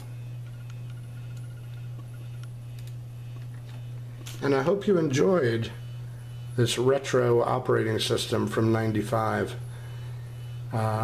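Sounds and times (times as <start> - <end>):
steady low hum: 0.0 - 11.0
computer mouse clicks: 0.6 - 3.5.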